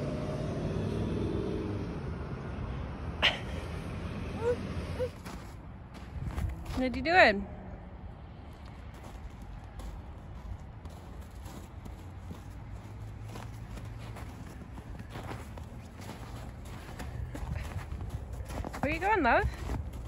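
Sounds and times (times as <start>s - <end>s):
small child footsteps: 5.1s - 7.1s, 8.4s - 20.0s.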